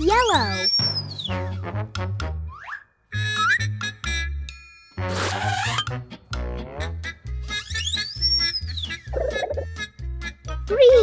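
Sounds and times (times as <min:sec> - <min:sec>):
children's music with bass beat: 0:03.2 - 0:11.0
cartoon whistle rising and falling: 0:07.6 - 0:09.4.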